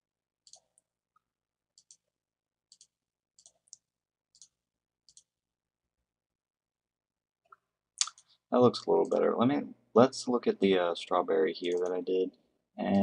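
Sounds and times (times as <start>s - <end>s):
computer mouse clicks: 0.4s - 0.9s, 1.8s - 2.1s, 2.7s - 5.3s, 7.5s - 9.4s, 11.6s - 12.0s.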